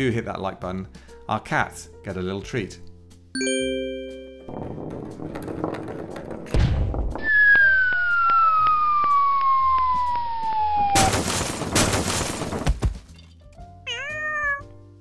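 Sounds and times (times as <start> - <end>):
bright chime: 3.4 - 4.5
low thud: 4.4 - 8.0
cartoon falling whistle: 7.3 - 11.1.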